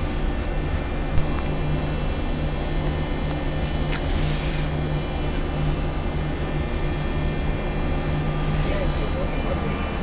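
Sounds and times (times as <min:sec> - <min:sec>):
crane engine and hydraulics droning: 0:00.0 - 0:10.0.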